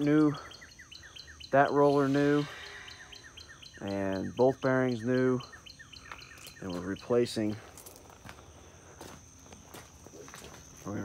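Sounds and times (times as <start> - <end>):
footsteps on gravel and grass: 6.0 - 11.0.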